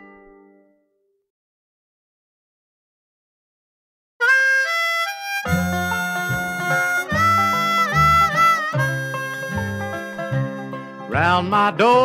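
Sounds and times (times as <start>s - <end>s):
harmonica melody: 4.2s - 12.0s
bluegrass band bass and rhythm: 5.5s - 12.0s.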